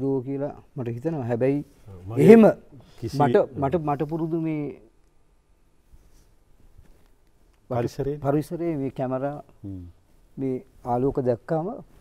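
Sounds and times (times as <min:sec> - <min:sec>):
man talking: 0:00.0 - 0:04.8.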